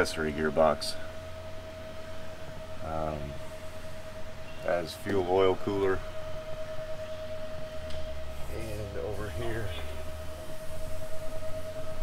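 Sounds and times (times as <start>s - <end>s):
background hum: 0.0s - 12.0s
constant mid-pitched tone: 0.0s - 12.0s.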